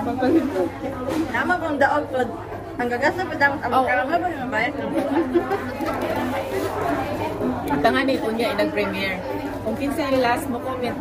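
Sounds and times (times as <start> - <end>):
overlapping voices chattering: 0.0 - 11.0.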